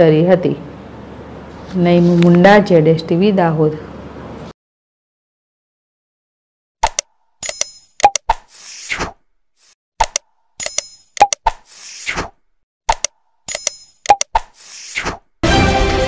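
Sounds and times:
mouse-style clicks: 0:06.8 - 0:08.5, 0:10.0 - 0:11.8, 0:12.9 - 0:14.8.

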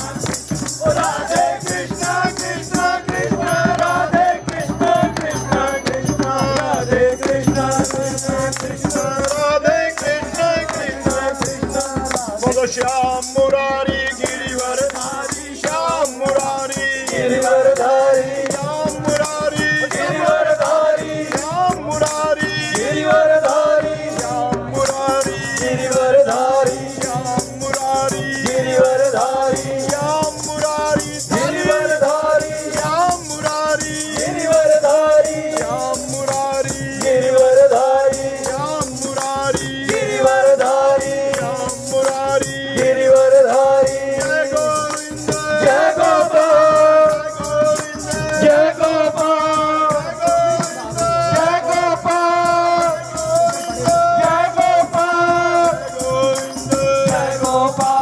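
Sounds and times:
group singing into a microphone: 0:00.0 - 0:58.0
hand-clapping: 0:00.0 - 0:58.0.

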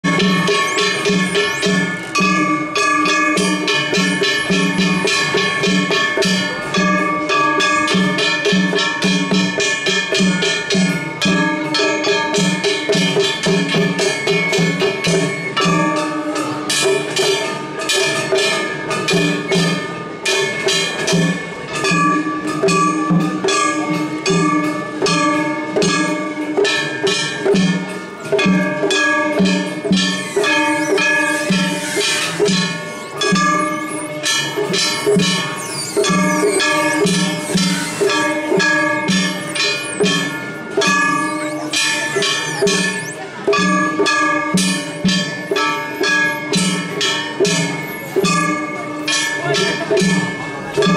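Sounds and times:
hand gongs clanging: 0:00.0 - 0:50.9
taiko drum beats: 0:00.0 - 0:50.9.

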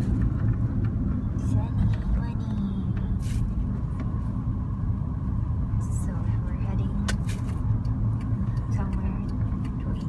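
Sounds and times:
car engine and tyre rumble: 0:00.0 - 0:10.0.

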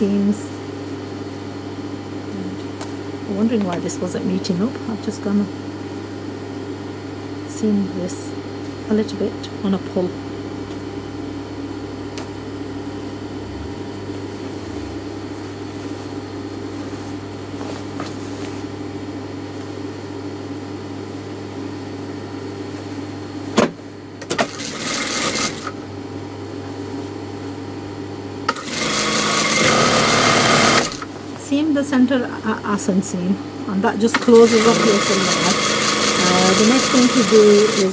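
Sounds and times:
sewing machine stitching: 0:24.3 - 0:25.7, 0:28.5 - 0:31.1, 0:34.1 - 0:37.9
sewing machine motor humming: 0:24.3 - 0:25.8, 0:28.5 - 0:31.1, 0:34.1 - 0:37.9.

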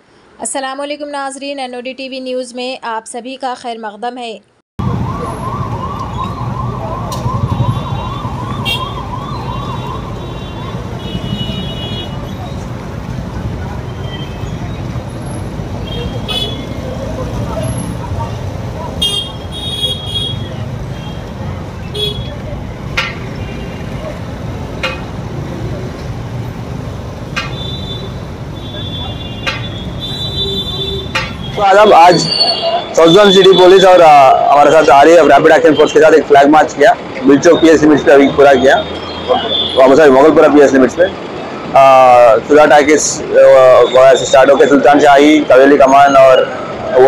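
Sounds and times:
street traffic: 0:00.0 - 0:47.0
police siren yelping: 0:04.8 - 0:11.0
crowd noise: 0:04.8 - 0:35.6.

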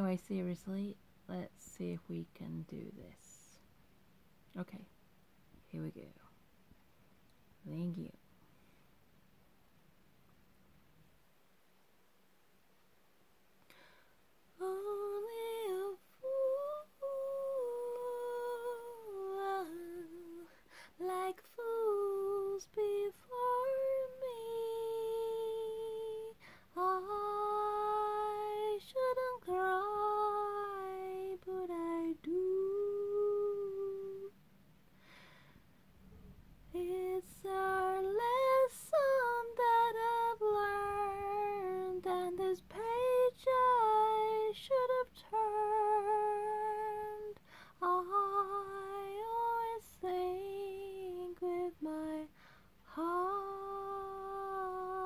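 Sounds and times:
woman singing unaccompanied: 0:00.0 - 0:03.6, 0:14.5 - 0:34.4, 0:36.7 - 0:55.0.

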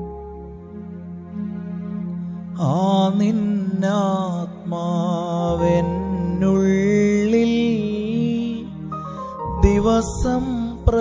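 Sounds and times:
keyboard chords: 0:00.0 - 0:11.0
man singing devotional song: 0:02.6 - 0:11.0.

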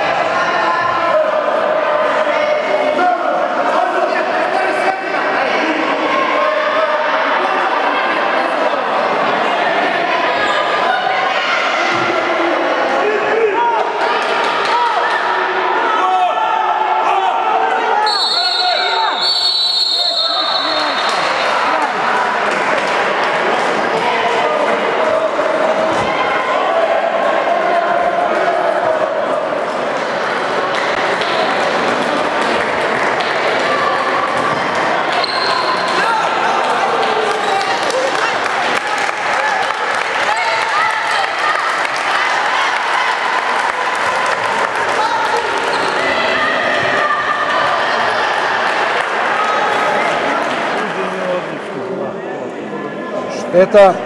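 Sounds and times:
echoing shouts and voices: 0:00.0 - 0:54.0
short high whistle blasts: 0:18.1 - 0:21.1.

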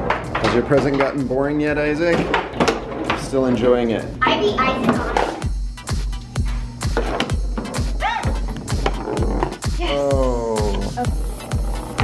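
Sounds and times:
foosball players and rods clacking: 0:00.0 - 0:03.9, 0:06.9 - 0:09.6
background music with low beat: 0:00.0 - 0:12.0.

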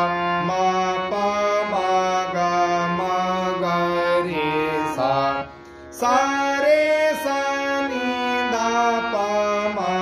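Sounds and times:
harmonium melody: 0:00.0 - 0:10.0.

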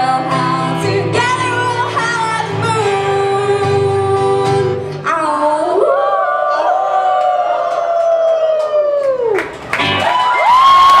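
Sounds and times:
strummed acoustic guitars: 0:00.0 - 0:05.3
crowd cheering: 0:05.8 - 0:11.0.

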